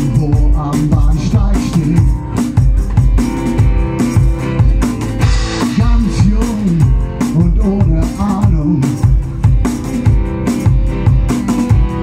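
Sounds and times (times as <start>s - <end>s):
man singing: 0.0s - 2.3s, 5.6s - 9.2s
guitar: 0.0s - 12.0s
steady drum beat: 0.0s - 12.0s.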